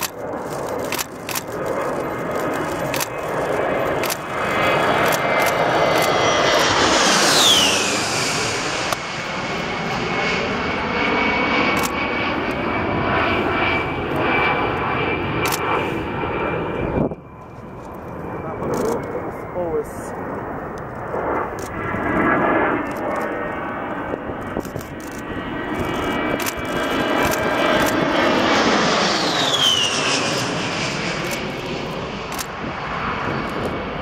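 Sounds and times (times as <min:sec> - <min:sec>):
jet passing low overhead: 0:00.0 - 0:34.0.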